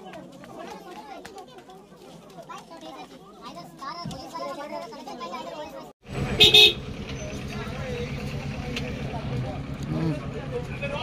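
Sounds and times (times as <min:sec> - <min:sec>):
children's voices: 0:00.0 - 0:06.0
crowd chattering: 0:00.0 - 0:11.0.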